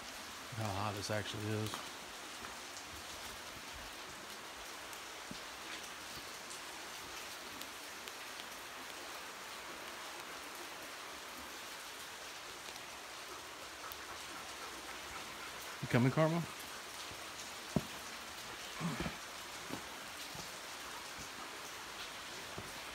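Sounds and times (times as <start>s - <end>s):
falling and running water: 0.0s - 22.9s.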